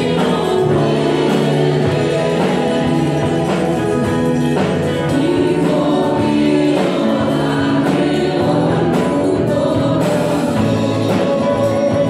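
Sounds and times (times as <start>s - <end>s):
congregation singing a hymn: 0.0s - 12.0s
guitar: 0.0s - 12.0s.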